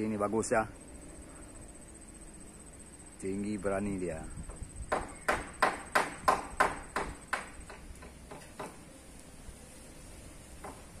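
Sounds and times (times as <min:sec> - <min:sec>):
hammer blows on timber: 0:04.5 - 0:08.8.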